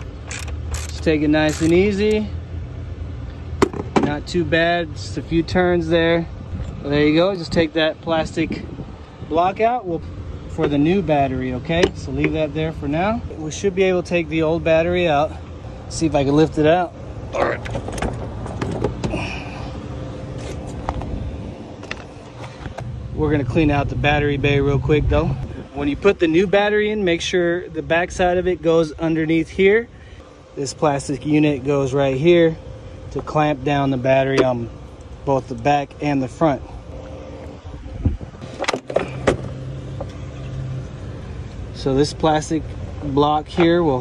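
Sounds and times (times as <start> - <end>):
car engine humming: 0.0 - 44.0
steady low rumble: 1.7 - 44.0
plastic battery case knocks and scrapes: 3.6 - 4.1.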